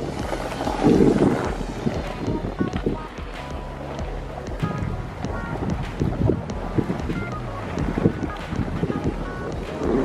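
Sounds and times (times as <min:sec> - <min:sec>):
snowboard sliding on snow: 0:00.0 - 0:02.5
quiet background music: 0:00.0 - 0:10.0
wind rushing over microphone: 0:00.0 - 0:10.0.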